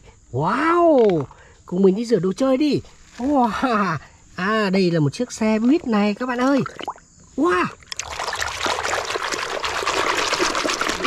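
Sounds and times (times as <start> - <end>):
water sloshing in a plastic tub: 5.4 - 11.0
small fizzy splashes: 7.9 - 11.0.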